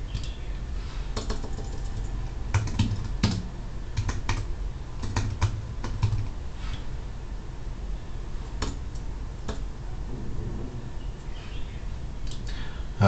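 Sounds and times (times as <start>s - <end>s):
laptop keystrokes and clicks: 1.2s - 6.3s, 8.6s - 8.8s.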